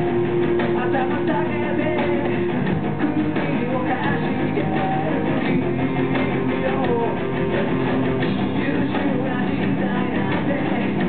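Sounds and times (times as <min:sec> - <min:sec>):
guitars strumming: 0:00.0 - 0:11.0
rock band playing live: 0:00.0 - 0:11.0.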